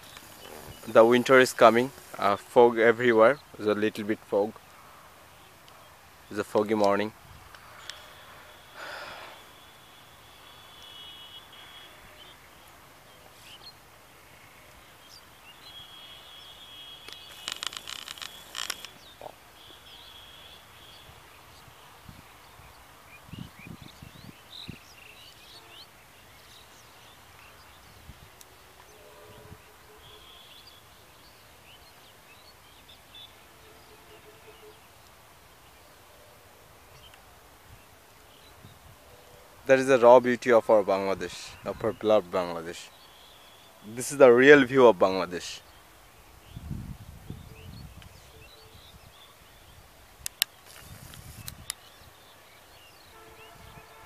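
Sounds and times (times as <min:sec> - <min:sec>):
high bird calls: 0:00.0 - 0:03.8, 0:04.4 - 0:36.3, 0:40.9 - 0:54.0.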